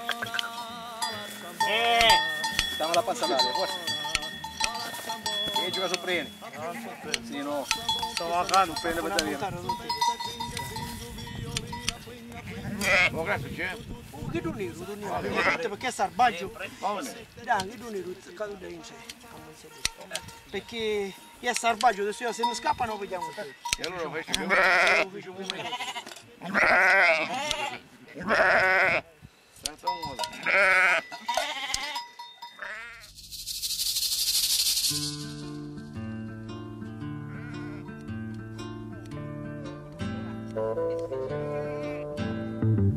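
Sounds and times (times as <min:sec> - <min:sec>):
sheep bleating: 0:00.0 - 0:05.0, 0:06.5 - 0:07.5, 0:12.3 - 0:13.4, 0:15.0 - 0:15.8, 0:24.2 - 0:29.1, 0:30.2 - 0:33.1, 0:37.2 - 0:38.0, 0:41.3 - 0:42.2
steady high hiss: 0:33.0 - 0:35.7.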